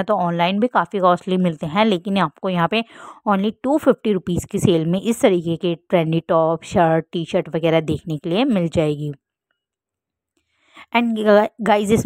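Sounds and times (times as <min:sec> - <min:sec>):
woman speaking: 0:00.0 - 0:09.2, 0:10.8 - 0:12.0.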